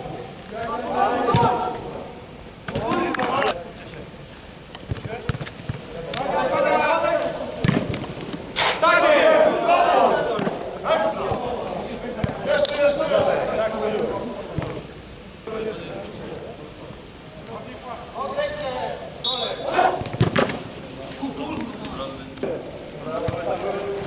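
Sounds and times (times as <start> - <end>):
footballers shouting: 0.0 - 3.6, 5.0 - 14.9, 17.6 - 24.0
ball kicked thuds: 7.6 - 8.0, 20.0 - 20.6.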